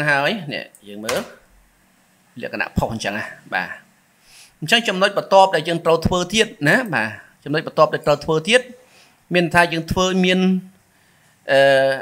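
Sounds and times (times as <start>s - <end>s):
person speaking: 0.0s - 1.5s, 2.4s - 3.9s, 4.6s - 10.8s.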